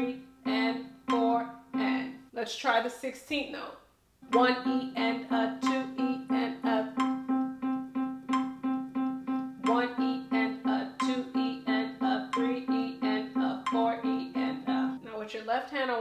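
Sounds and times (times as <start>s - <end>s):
digital piano note repeated: 6.8s - 11.5s.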